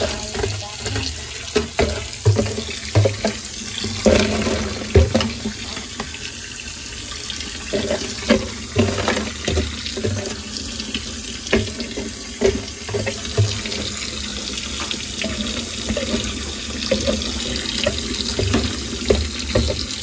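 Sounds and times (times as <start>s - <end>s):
tap water running onto ice: 0.0s - 20.0s.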